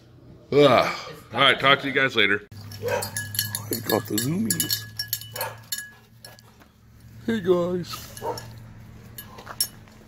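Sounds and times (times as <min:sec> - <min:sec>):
metal collar tags clicking: 0:02.5 - 0:07.2, 0:07.9 - 0:10.0.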